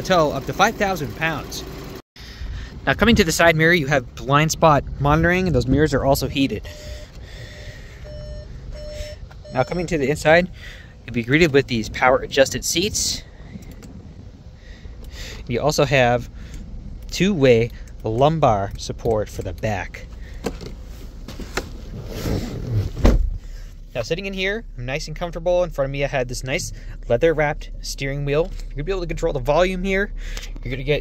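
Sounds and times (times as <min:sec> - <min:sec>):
car warning chime beeping: 0:06.6 - 0:10.6
person climbing into car seat: 0:20.4 - 0:23.6.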